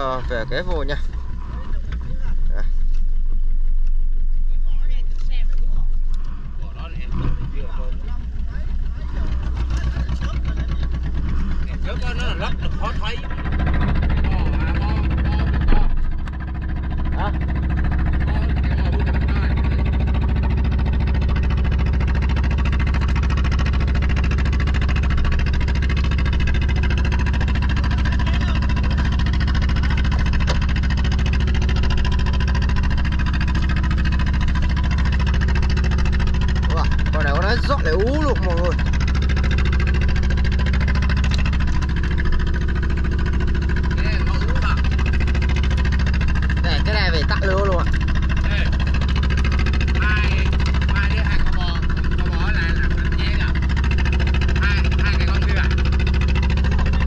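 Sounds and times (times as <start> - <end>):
boat engine droning: 0.0 - 57.0.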